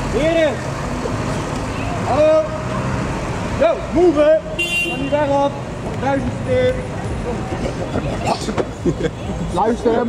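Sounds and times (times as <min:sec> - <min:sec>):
onlookers' voices: 0:00.0 - 0:10.0.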